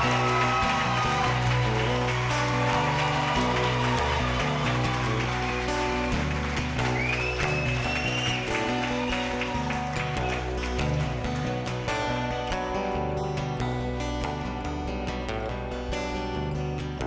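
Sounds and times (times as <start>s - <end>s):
audience applauding: 0.0s - 12.0s
acoustic guitar playing: 0.0s - 17.0s.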